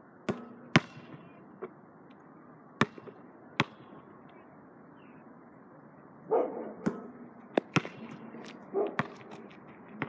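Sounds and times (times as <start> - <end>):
basketball bouncing: 0.3 - 1.3, 2.8 - 3.8, 6.8 - 8.3, 8.9 - 9.4.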